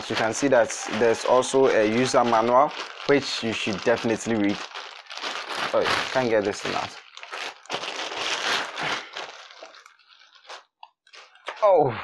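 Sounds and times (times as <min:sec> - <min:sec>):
plastic wrapping crinkling: 0:00.0 - 0:11.6.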